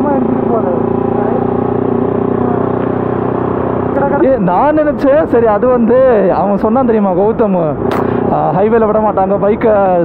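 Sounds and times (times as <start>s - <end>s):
motorcycle engine droning: 0.0s - 10.0s.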